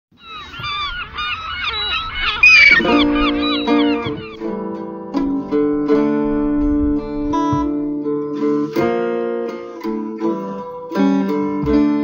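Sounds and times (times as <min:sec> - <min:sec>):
gulls calling: 0:00.1 - 0:08.7.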